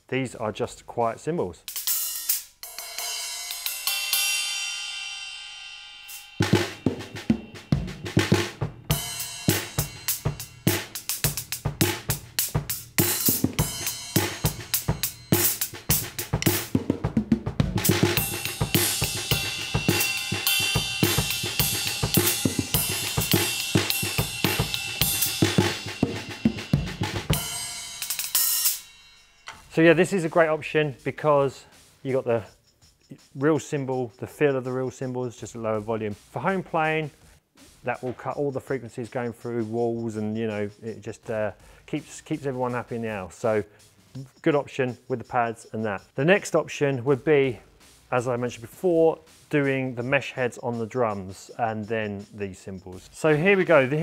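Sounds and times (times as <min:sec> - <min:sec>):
cymbal hit ringing: 0:02.0 - 0:16.7, 0:17.8 - 0:30.2
muted drum kit beat: 0:06.1 - 0:54.0.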